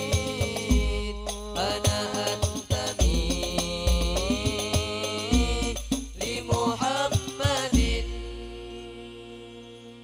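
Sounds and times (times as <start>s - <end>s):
hand frame drums: 0.0s - 8.6s
chanted singing: 0.0s - 10.0s.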